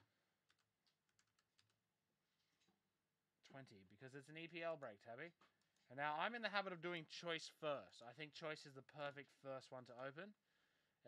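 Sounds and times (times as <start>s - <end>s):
faint keyboard clicks: 0.4s - 1.8s.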